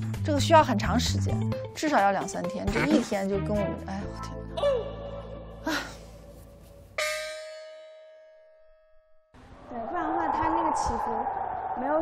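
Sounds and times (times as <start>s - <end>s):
background music: 0.0s - 8.4s.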